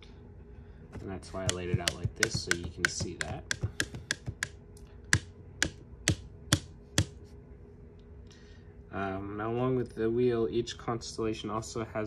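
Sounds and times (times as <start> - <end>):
pen clicking: 1.4 - 4.5.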